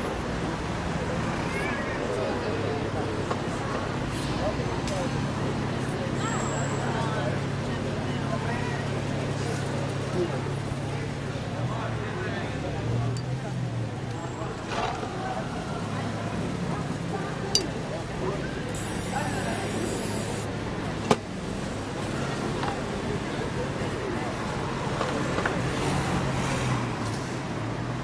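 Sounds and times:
crowd chatter: 0:00.0 - 0:28.0
traffic hum: 0:00.0 - 0:28.0
spray paint can hissing: 0:18.8 - 0:20.5.

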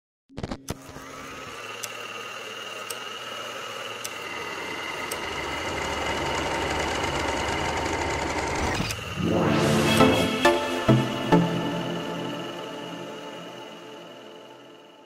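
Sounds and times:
noisy electronic drone: 0:06.1 - 0:15.0.

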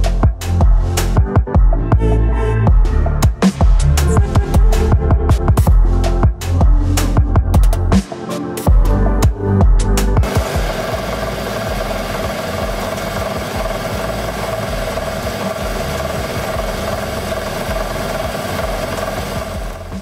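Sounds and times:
electronic music beats: 0:00.0 - 0:20.0
lathe cutting metal: 0:10.2 - 0:20.0.

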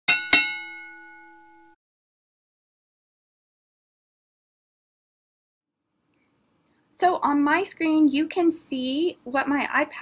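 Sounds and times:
boxing ring bell ringing: 0:00.1 - 0:01.8.

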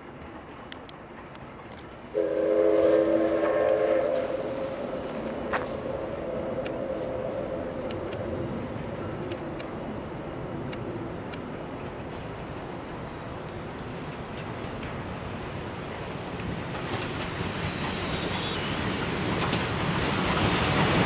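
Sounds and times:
distant steam train running: 0:02.1 - 0:21.0
steam locomotive whistle: 0:02.2 - 0:08.6, 0:18.0 - 0:19.0.

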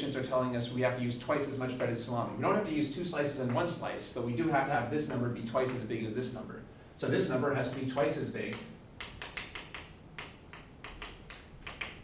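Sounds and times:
chalk tapping on chalkboard: 0:07.6 - 0:12.0.

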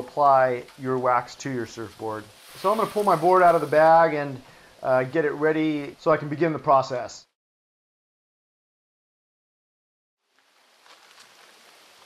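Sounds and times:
faint outdoor background hiss: 0:00.0 - 0:07.4, 0:10.2 - 0:12.0.

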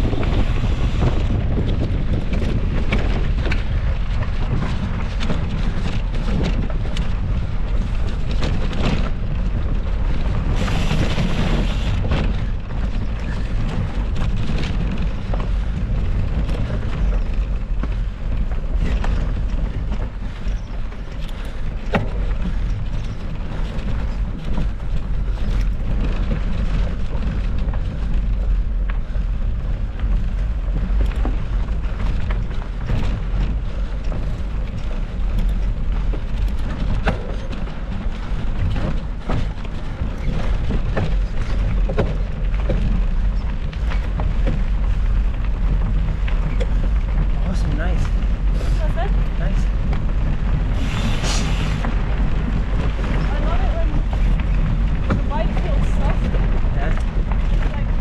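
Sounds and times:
bike clicking and rattling on stones: 0:00.0 - 0:58.0
tyres rolling over gravel: 0:00.0 - 0:58.0
wind buffeting microphone: 0:00.0 - 0:58.0.

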